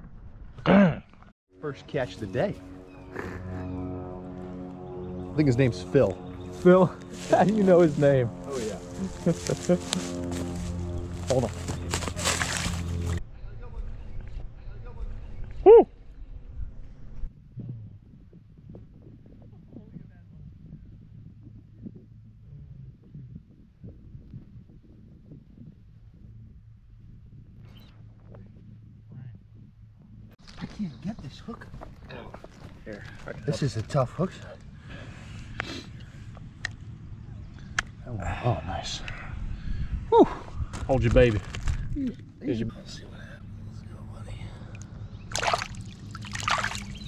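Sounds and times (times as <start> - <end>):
faint outdoor background: 0.0 - 47.0
low steady rumble: 1.8 - 15.4, 16.1 - 30.4
water splashing and sloshing: 45.2 - 47.0.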